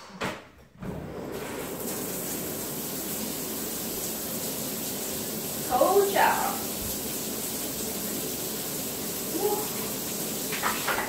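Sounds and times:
shower water spraying: 0.9 - 11.0.

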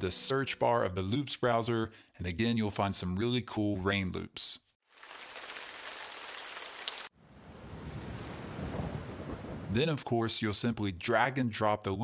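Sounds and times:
rain hissing: 4.9 - 7.1
heavy rain with low rumble: 5.5 - 9.8.

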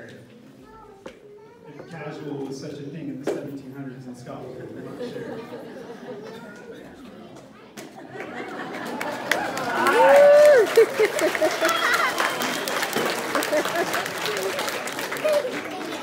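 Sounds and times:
audience laughing: 4.5 - 6.7, 7.9 - 16.0
audience applauding: 8.1 - 16.0
voices cheering: 8.3 - 16.0.

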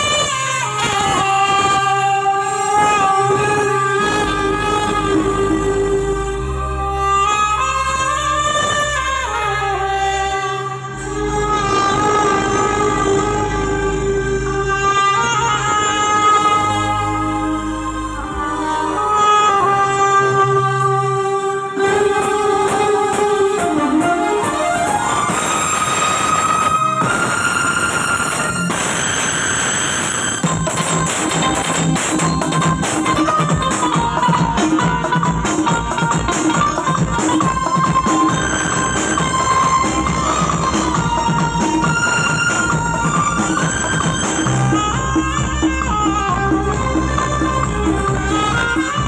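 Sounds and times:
band accompaniment: 0.0 - 49.0
saxophone melody: 0.0 - 49.0
steady low drone: 1.8 - 25.8.

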